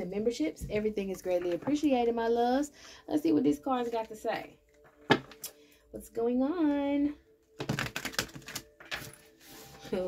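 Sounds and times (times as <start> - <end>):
cards being shuffled: 7.6 - 9.7.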